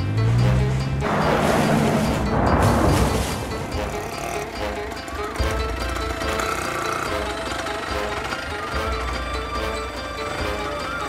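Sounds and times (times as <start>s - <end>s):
film music with held notes: 0.0s - 11.0s.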